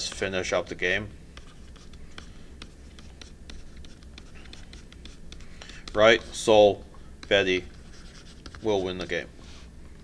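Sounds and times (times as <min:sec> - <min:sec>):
stylus tapping and scratching on tablet: 0:00.0 - 0:06.4, 0:07.1 - 0:09.6.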